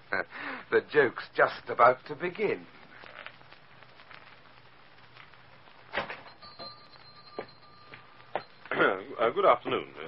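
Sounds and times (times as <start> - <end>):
door bell ringing: 6.1 - 9.2.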